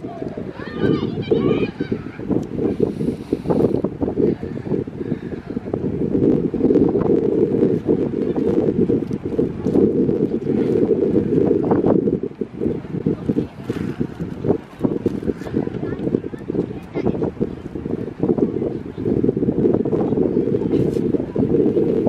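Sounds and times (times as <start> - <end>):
wind rumbling on microphone: 0.0 - 22.0.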